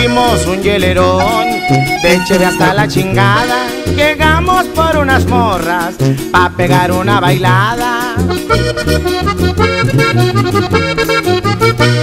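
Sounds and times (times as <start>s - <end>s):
button accordion melody: 0.0s - 12.0s
strummed guitar: 0.0s - 12.0s
tuba bass notes: 0.0s - 12.0s.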